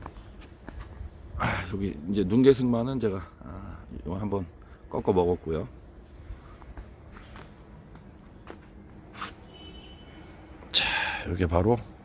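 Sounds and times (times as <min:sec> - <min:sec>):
soft footsteps: 0:00.0 - 0:01.3, 0:05.8 - 0:10.7.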